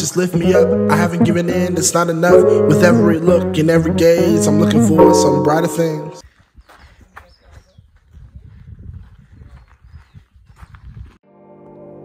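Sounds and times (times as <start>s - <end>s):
footsteps on gravel: 6.2s - 11.2s.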